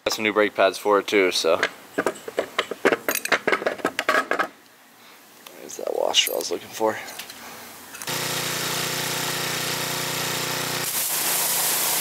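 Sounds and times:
metal parts clinking on concrete: 1.6 - 4.5.

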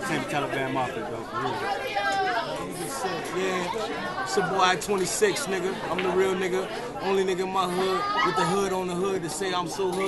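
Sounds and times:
men talking: 0.0 - 1.8, 2.5 - 10.0
crowd chatter: 0.0 - 10.0.

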